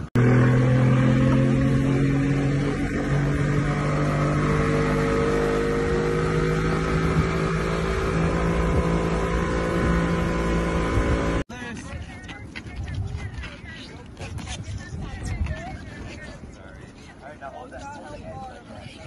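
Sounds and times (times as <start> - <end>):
boat wake rushing: 0.0 - 11.4
outboard motor droning: 0.0 - 11.4.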